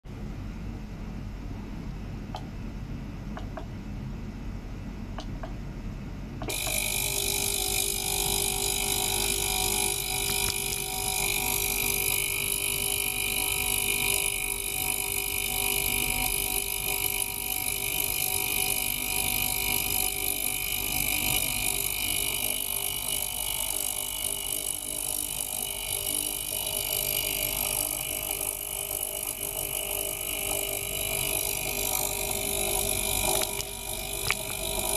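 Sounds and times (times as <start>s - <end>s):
ultrasonic cleaner buzzing: 6.4s - 34.9s.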